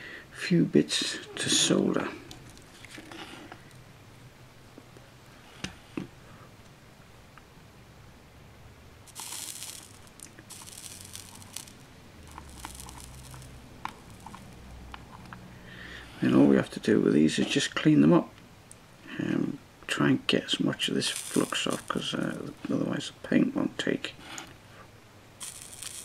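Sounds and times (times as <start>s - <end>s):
flux sizzling under soldering iron: 9.0s - 15.2s, 20.8s - 22.8s, 25.4s - 26.0s
soldering iron and wire clicks: 9.1s - 15.0s, 25.4s - 26.0s.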